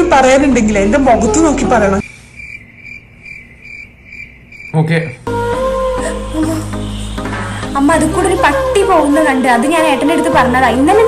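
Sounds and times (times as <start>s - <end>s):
crickets chirping: 2.0s - 5.3s.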